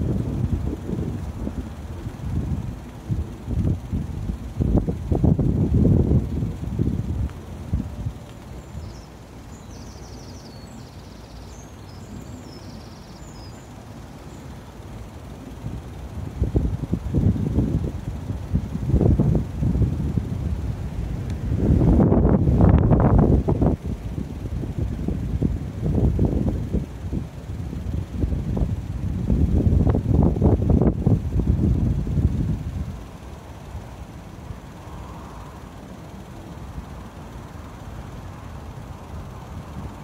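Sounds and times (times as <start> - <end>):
wind buffeting microphone: 0.0 - 9.8, 14.9 - 34.8.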